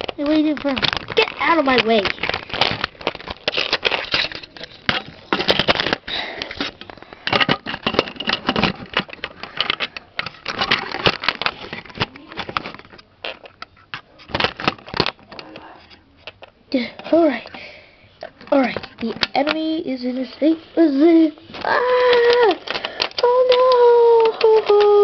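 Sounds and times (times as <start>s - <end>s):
plastic toy bricks clattering: 0.0s - 6.0s, 6.6s - 13.5s, 21.6s - 25.0s
rubbing and handling noise: 0.0s - 25.0s.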